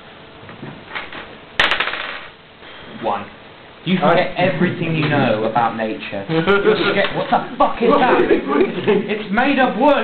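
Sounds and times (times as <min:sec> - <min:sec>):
die clattering on table: 0:01.0 - 0:02.3.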